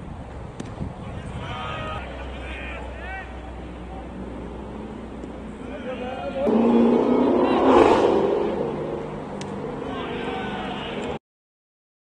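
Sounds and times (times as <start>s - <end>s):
steady background rumble: 0.0s - 11.2s
indistinct voices: 5.6s - 11.2s.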